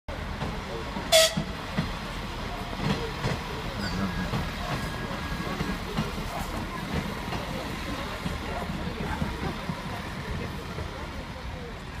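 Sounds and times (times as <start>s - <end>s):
electric train rumbling past: 0.1s - 12.0s
people's voices: 0.1s - 12.0s.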